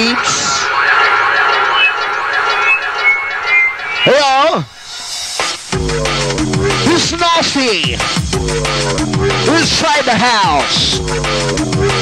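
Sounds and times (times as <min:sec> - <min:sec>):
drum and bass music: 0:00.0 - 0:12.0.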